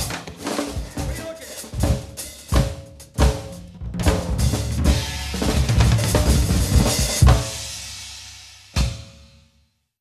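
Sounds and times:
drum kit playing: 0.0 - 9.5.

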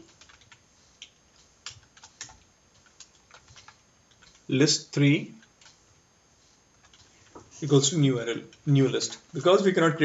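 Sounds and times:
keyboard typing: 0.0 - 4.5, 5.4 - 5.8, 6.7 - 7.7.

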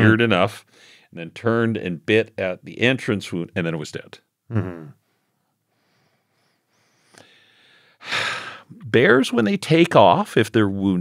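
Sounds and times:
man breathing: 0.7 - 1.1, 5.0 - 8.8.

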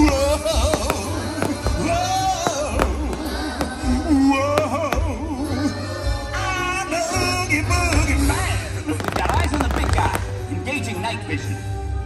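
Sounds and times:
fireworks bursting and crackling: 0.0 - 5.4, 7.7 - 10.7
soundtrack music with heavy bass: 0.0 - 12.0.

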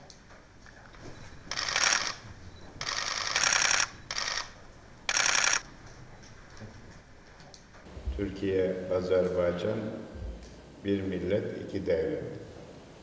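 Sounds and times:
camera shutters clicking: 1.5 - 2.2, 2.8 - 5.7.

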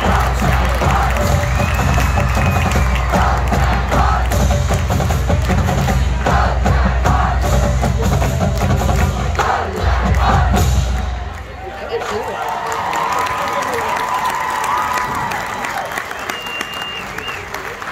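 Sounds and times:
marching band playing: 0.0 - 12.1
crowd cheering and shouting: 0.0 - 17.9.

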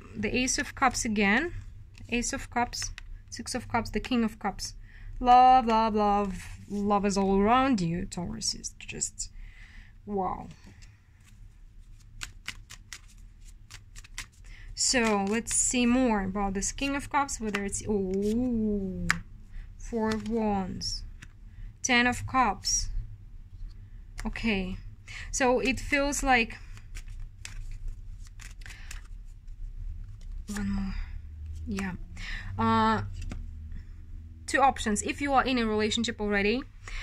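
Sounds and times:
cards being shuffled: 0.5 - 3.1, 10.6 - 15.8, 16.6 - 19.3, 20.0 - 20.4, 21.1 - 21.4, 25.6 - 30.7, 33.1 - 33.6
crisp card clicks: 12.2 - 14.4, 26.7 - 29.2.

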